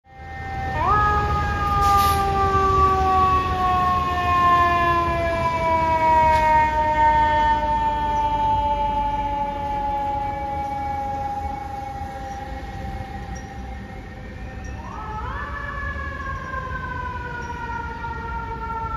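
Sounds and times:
fire truck siren: 0.1s - 18.9s.

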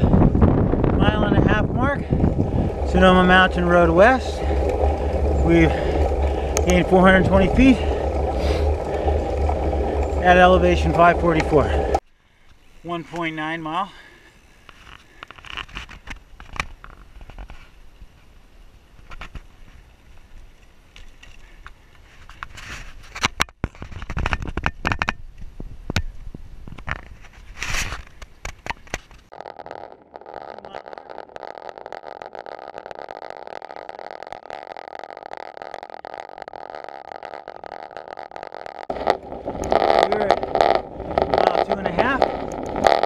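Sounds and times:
bicycle knocks and rattles: 0.0s - 11.8s, 22.2s - 29.3s
steady rushing noise: 0.0s - 12.0s, 29.3s - 43.0s
wind buffeting microphone: 0.0s - 12.0s, 38.9s - 43.0s
low road rumble: 0.0s - 43.0s.

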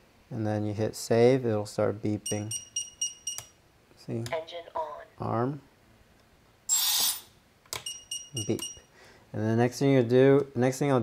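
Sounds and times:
buzzer beeping in high tones: 2.3s - 3.5s, 7.8s - 8.8s
short hiss: 6.7s - 7.3s.

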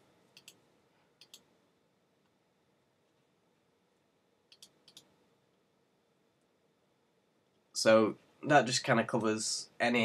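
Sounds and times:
computer mouse clicks: 0.3s - 0.6s, 1.2s - 1.5s, 4.5s - 5.2s.

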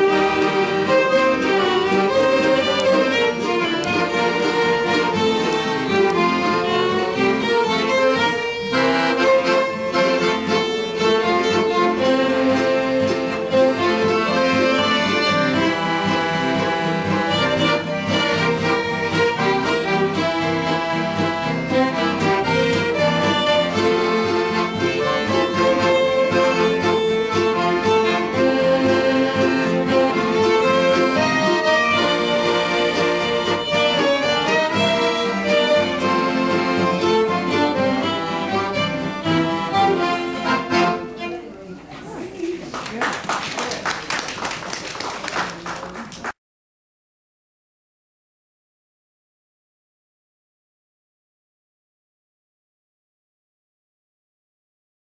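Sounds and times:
accordion melody: 0.0s - 41.7s
folk band playing a polka: 0.0s - 46.3s.

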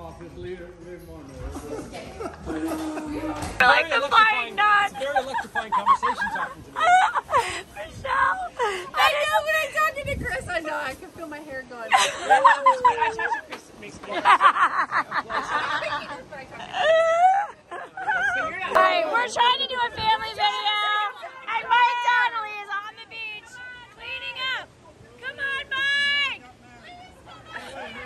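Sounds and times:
woman laughing: 1.6s - 3.5s, 5.0s - 7.8s, 11.9s - 13.5s
people calling out: 16.5s - 28.0s.

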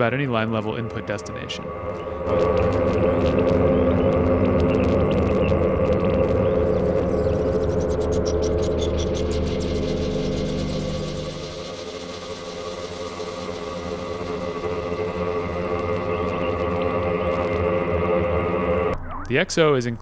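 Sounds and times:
synthesizer drone: 0.0s - 19.4s.

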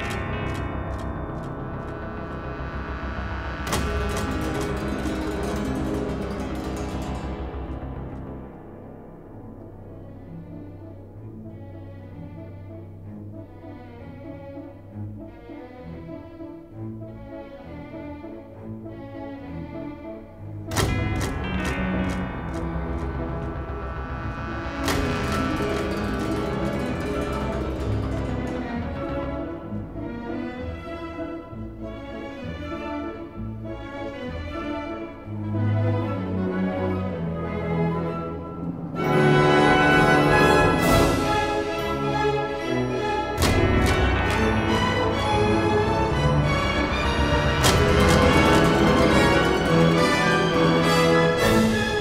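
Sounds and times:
sharp percussive strikes: 0.0s - 9.3s, 20.7s - 29.6s, 39.0s - 52.0s
orchestral film music: 0.0s - 52.0s.

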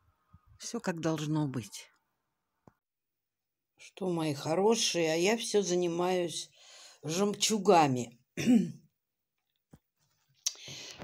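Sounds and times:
woman's voice: 0.6s - 2.0s, 3.8s - 8.2s.

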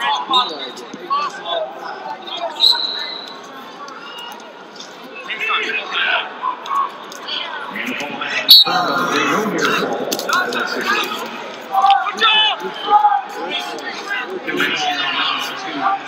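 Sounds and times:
voices of people: 0.0s - 16.0s
referee's whistle blast: 2.6s - 3.4s, 8.5s - 8.8s.

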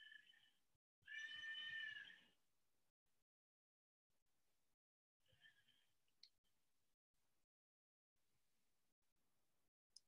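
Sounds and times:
drawn-out animal cry: 1.1s - 2.3s.

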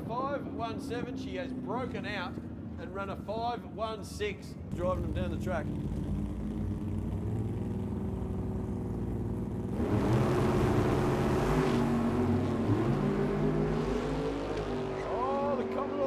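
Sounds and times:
drag racing engines revving: 4.6s - 16.0s.

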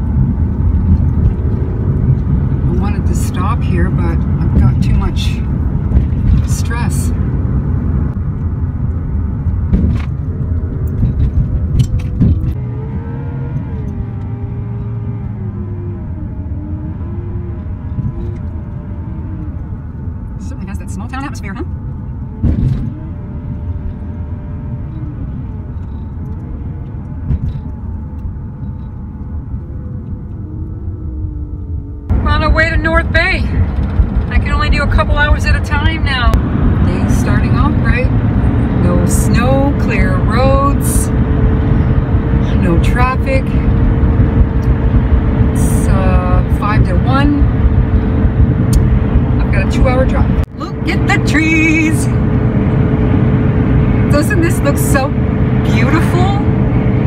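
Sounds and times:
van engine and tyres rumbling: 0.0s - 57.0s.

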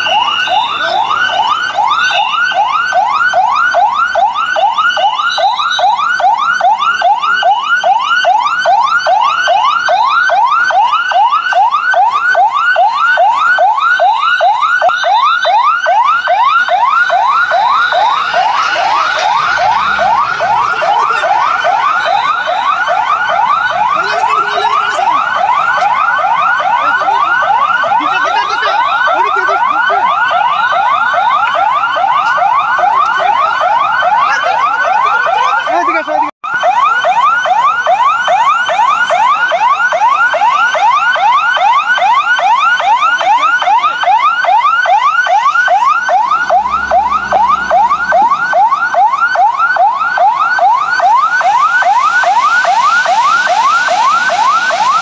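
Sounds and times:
electronic siren wailing: 0.0s - 55.0s.

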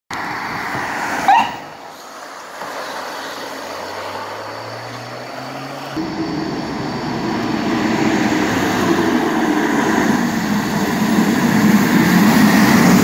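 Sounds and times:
road noise: 0.1s - 13.0s
low engine hum: 1.7s - 13.0s.

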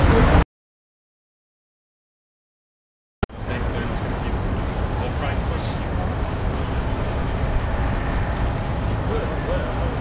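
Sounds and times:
low rumbling outdoor background noise: 3.3s - 10.0s.

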